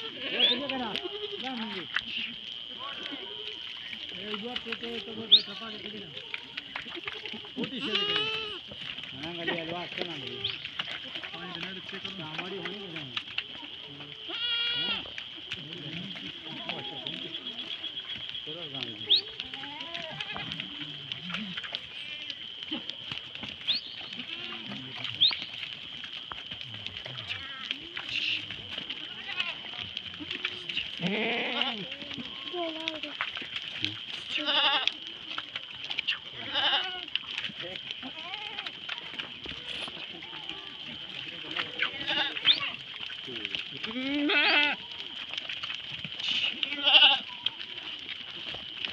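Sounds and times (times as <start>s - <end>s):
goat bleating: 0.0s - 1.8s, 5.0s - 12.7s, 14.2s - 15.1s, 15.8s - 17.8s, 19.2s - 22.9s, 24.0s - 24.9s, 28.9s - 33.0s, 34.2s - 35.0s, 36.4s - 37.2s, 38.0s - 42.8s, 43.8s - 45.0s, 46.4s - 47.6s.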